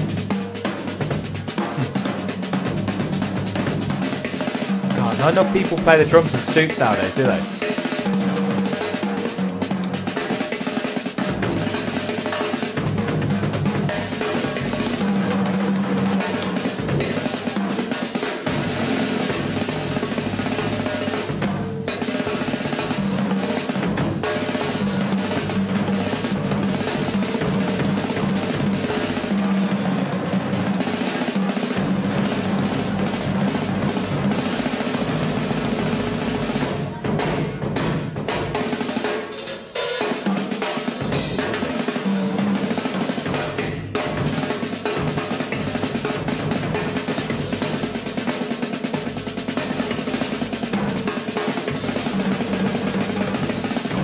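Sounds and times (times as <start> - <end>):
drum kit solo: 0.0 - 54.0.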